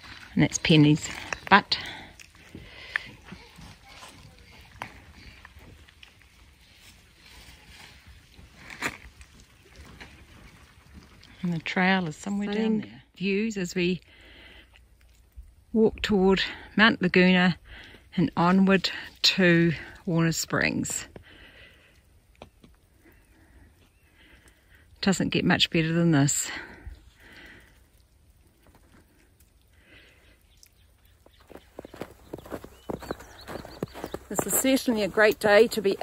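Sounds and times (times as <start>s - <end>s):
faint outdoor ambience: 0.0s - 36.0s.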